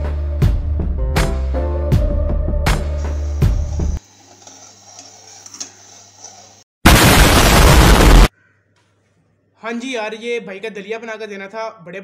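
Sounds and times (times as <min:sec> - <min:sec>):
spoon scraping pot: 0:03.8 - 0:06.6
spoon stirring porridge: 0:04.0 - 0:06.6.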